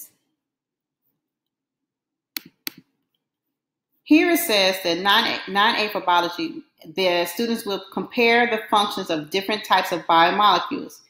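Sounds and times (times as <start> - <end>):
computer mouse clicks: 2.4 - 2.9.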